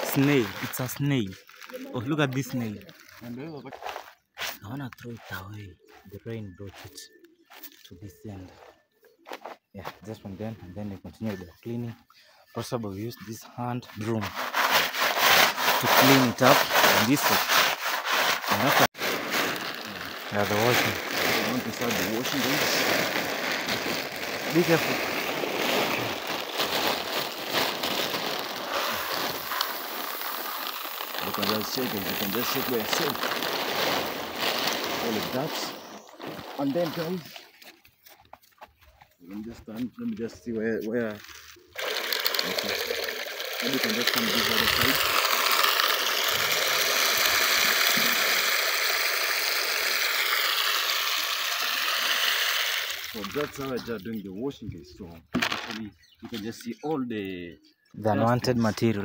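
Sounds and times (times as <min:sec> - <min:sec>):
grain pouring into bucket: 0:00.0 - 0:01.7, 0:14.1 - 0:37.4, 0:41.3 - 0:53.9
plastic sack rustling and crackling: 0:00.0 - 0:04.2, 0:14.0 - 0:38.1, 0:41.0 - 0:54.0.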